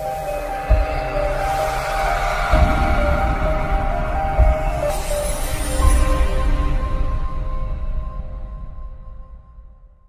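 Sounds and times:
deep bass hit: 0.7s - 6.8s.

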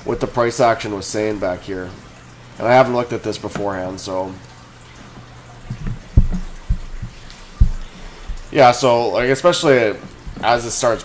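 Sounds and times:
soft low thumps: 5.6s - 9.4s.

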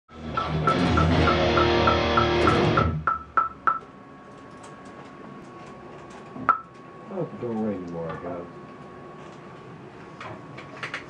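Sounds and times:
guitar and drum music: 0.1s - 3.4s
metronome click track: 0.4s - 3.8s.

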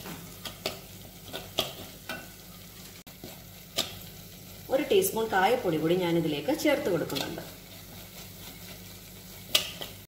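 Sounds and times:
soft sizzle of frying: 0.0s - 10.0s
spoon stirring in a pan: 0.0s - 10.0s
spoon clicking against pan: 9.5s - 9.9s.

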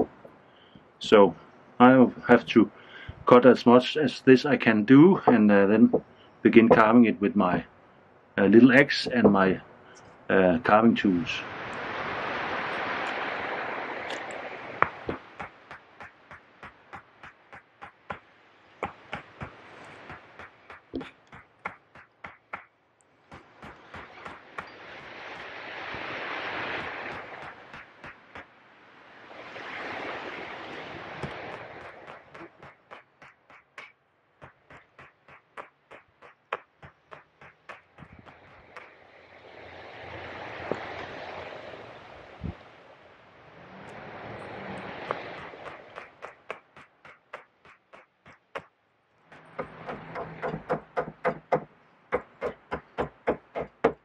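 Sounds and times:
hand axe chopping wood: 14.8s - 22.7s, 23.3s - 28.5s, 30.7s - 39.0s, 45.0s - 48.7s, 49.3s - 54.0s.

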